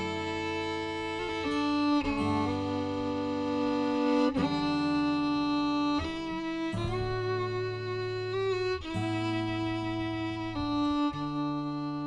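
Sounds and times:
acoustic guitar accompaniment: 0.0 - 12.0
fiddle playing slow melody: 0.0 - 12.0.

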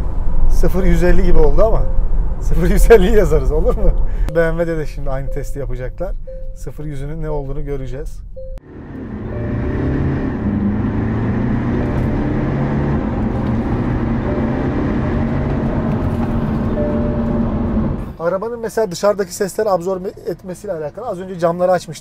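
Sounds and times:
car engine accelerating hard: 8.6 - 18.2.

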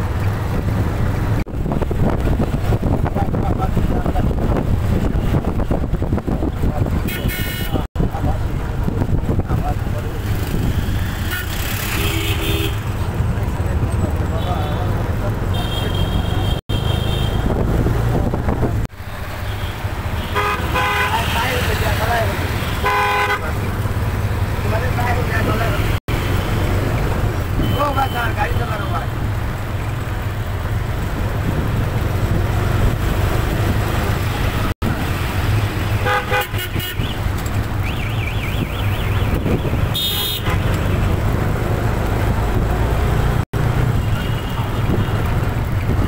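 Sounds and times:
traffic rumble: 0.0 - 46.0
vehicle horn toots: 7.0 - 7.9, 11.2 - 12.9, 15.5 - 17.5, 19.4 - 21.6, 22.6 - 23.6, 27.6 - 28.6, 36.0 - 37.3, 37.9 - 40.8.

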